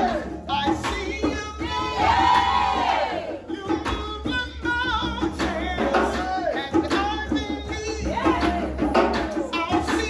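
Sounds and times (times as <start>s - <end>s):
backing voices singing: 0.0s - 10.0s
band playing a steady beat: 0.0s - 10.0s.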